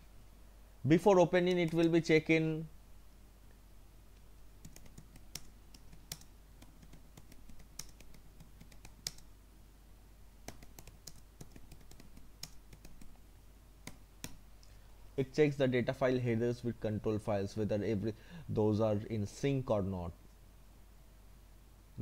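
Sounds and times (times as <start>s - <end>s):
computer keyboard typing: 4.6s - 9.3s, 10.4s - 13.2s.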